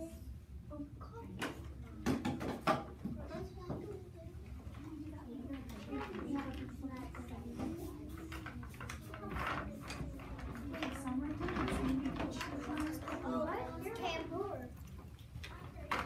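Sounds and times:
children chattering: 2.8 - 16.0.

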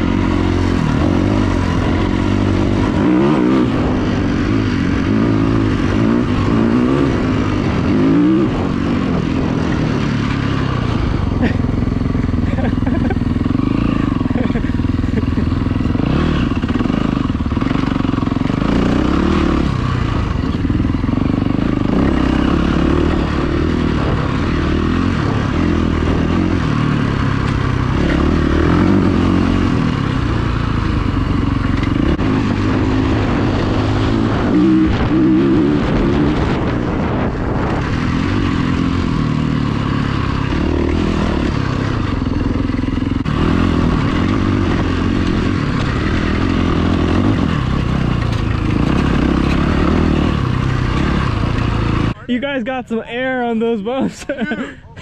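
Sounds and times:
vehicle engine running: 0.0 - 55.0
clatter: 25.2 - 33.3, 36.4 - 52.2.

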